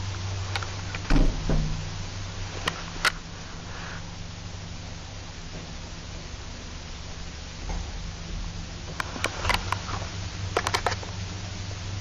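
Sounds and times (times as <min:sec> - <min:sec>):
lift car low hum: 0:00.0 - 0:12.0
thump: 0:01.1 - 0:02.0
lift heavy clunk: 0:01.1 - 0:02.1.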